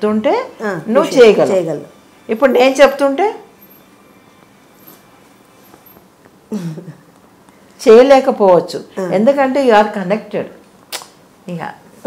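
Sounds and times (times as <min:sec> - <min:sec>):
woman speaking: 0:00.0 - 0:03.5, 0:07.8 - 0:10.6, 0:11.4 - 0:11.9
sharp click: 0:10.9 - 0:11.2.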